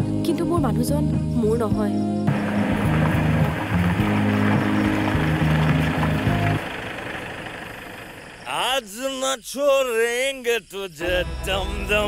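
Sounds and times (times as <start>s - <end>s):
dramatic music low chords: 0.0s - 7.0s
steady rushing noise: 2.3s - 8.3s.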